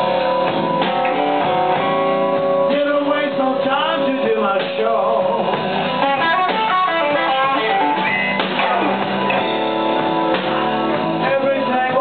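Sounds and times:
blues band playing: 0:00.0 - 0:12.0
electric guitar lead: 0:00.0 - 0:12.0.

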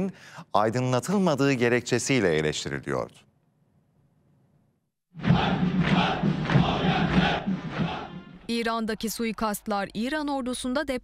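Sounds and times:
soldiers chanting in unison: 0:05.2 - 0:08.5.

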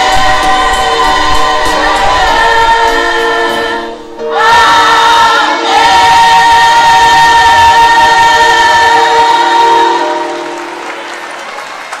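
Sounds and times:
choir holding chord: 0:00.0 - 0:11.5
audience applauding: 0:09.8 - 0:12.0.

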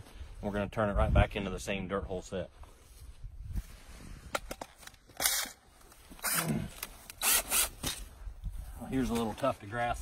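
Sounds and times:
drill bit grinding into dirt: 0:07.1 - 0:08.0.

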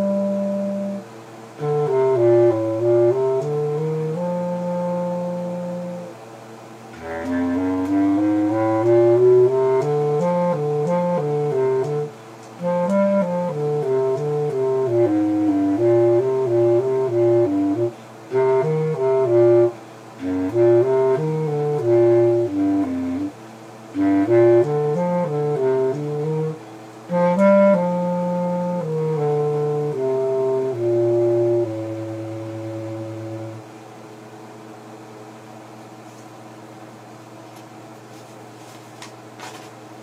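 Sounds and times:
low-pitched wind instrument melody: 0:00.0 - 0:06.2, 0:06.9 - 0:33.7.

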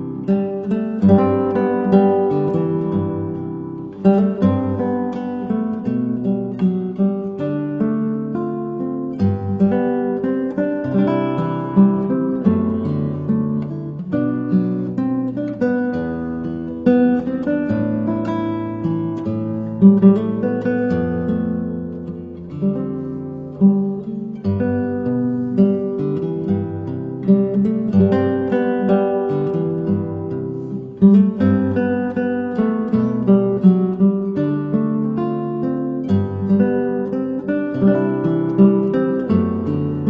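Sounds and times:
acoustic guitar music: 0:00.0 - 0:40.0.

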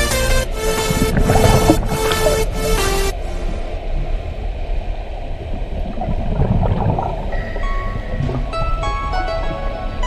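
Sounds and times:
background music: 0:00.0 - 0:03.3, 0:07.3 - 0:10.0
muffled underwater rumbling and sloshing: 0:00.5 - 0:10.0.

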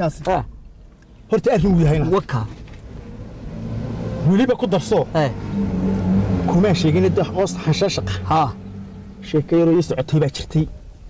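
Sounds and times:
car engine running: 0:00.1 - 0:11.0
men's voices: 0:01.3 - 0:10.9.

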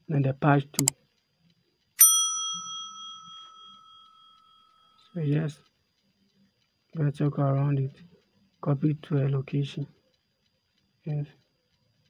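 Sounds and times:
bright bell ding: 0:02.0 - 0:04.9.

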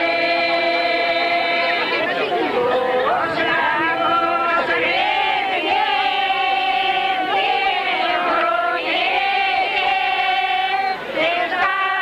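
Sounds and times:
voices singing a folk song: 0:00.0 - 0:12.0.

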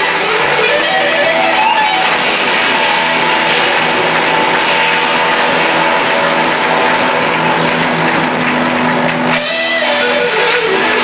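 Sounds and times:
bass: 0:00.0 - 0:11.0
drum strokes: 0:00.0 - 0:11.0
electric guitar: 0:00.0 - 0:11.0.

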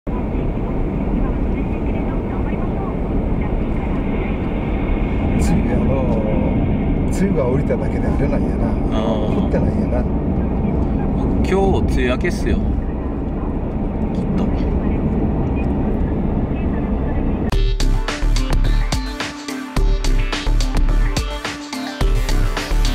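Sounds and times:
people talking: 0:00.1 - 0:17.5
car cabin road and engine rumble: 0:00.1 - 0:17.6.

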